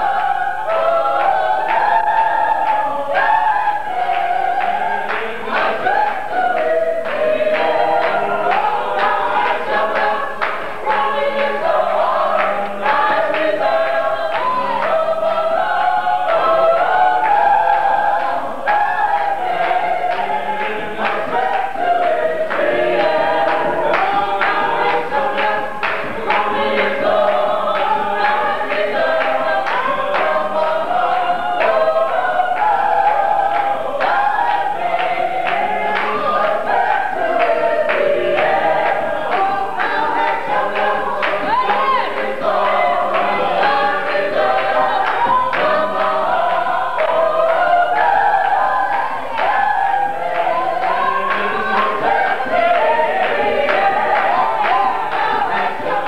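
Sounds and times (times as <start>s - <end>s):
choir singing: 0.0s - 56.0s.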